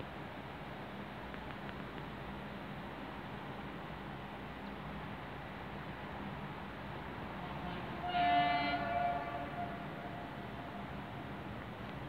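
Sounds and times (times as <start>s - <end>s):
steady background noise: 0.0s - 12.0s
train horn: 7.4s - 11.3s.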